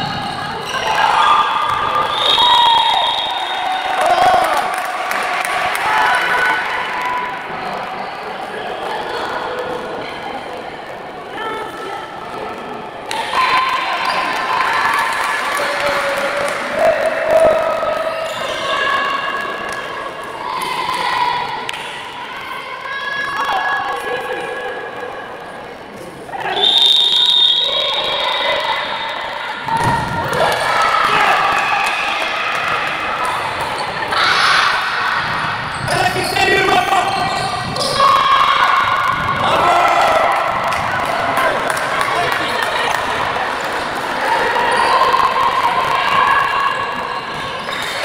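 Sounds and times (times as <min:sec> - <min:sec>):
voices calling out in a hall: 0:00.0 - 0:48.0
referee's whistle: 0:02.0 - 0:03.9, 0:26.4 - 0:28.8.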